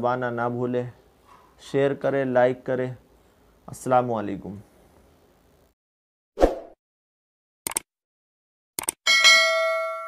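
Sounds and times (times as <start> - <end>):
bright bell chime: 9.1 - 10.0.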